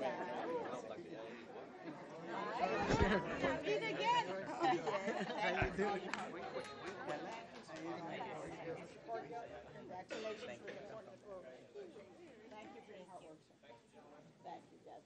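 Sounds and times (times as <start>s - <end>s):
overlapping voices: 2.4s - 8.5s.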